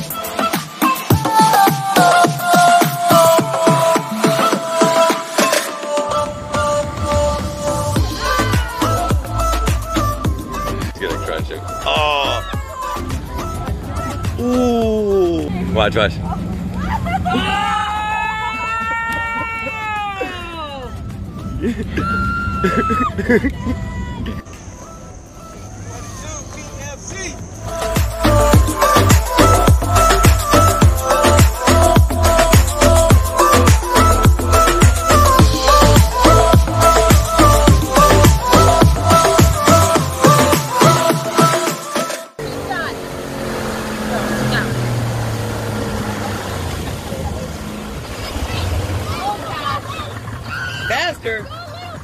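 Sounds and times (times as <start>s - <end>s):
churning wake water: 0.0s - 41.0s, 42.4s - 52.0s
voices: 1.4s - 52.0s
jet ski engine idling: 6.4s - 40.8s, 42.4s - 52.0s.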